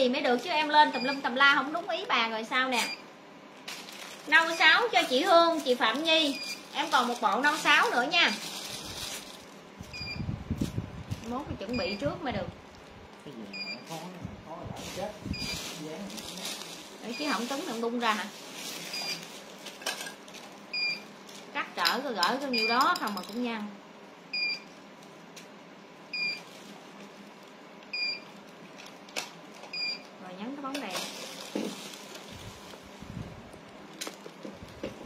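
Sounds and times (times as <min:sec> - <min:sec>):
plastic bag crinkling: 0:03.5 - 0:09.9, 0:10.6 - 0:11.8, 0:14.8 - 0:21.8, 0:30.8 - 0:33.0.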